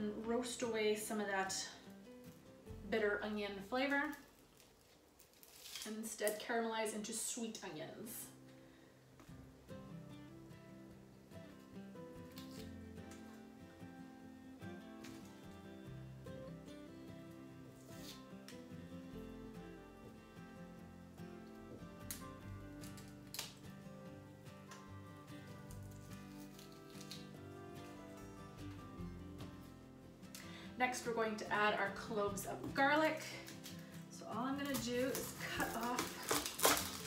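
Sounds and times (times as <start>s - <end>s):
quiet background music: 0.0s - 37.0s
onion skins crackling: 3.2s - 6.5s, 12.2s - 13.5s, 21.9s - 23.8s, 25.6s - 28.8s, 32.6s - 37.0s.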